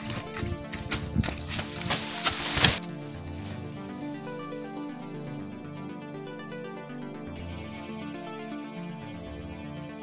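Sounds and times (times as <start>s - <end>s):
footsteps: 0.0s - 5.0s
background music: 0.0s - 10.0s
rustle of tall grass: 1.4s - 5.4s.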